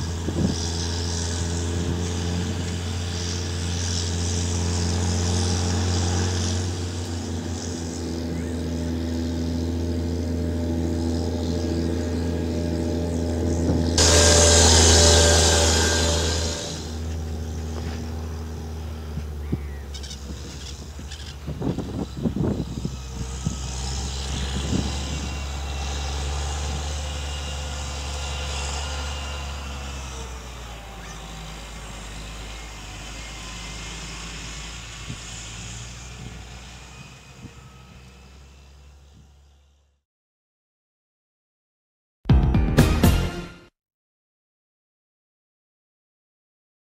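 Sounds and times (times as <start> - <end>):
large diesel engine running: 0.0 - 40.0
loud rushing hiss: 14.0 - 17.3.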